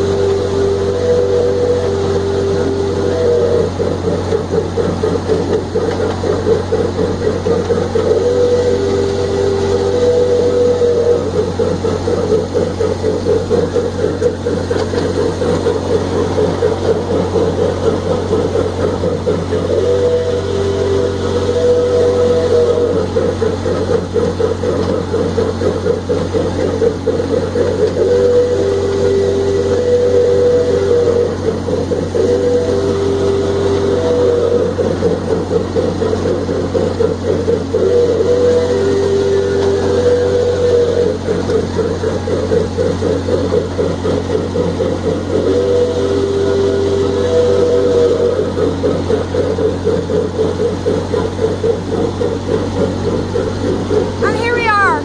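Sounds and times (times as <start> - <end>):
miniature train running: 0.0 - 55.0
rapid rattle of train: 0.0 - 55.0.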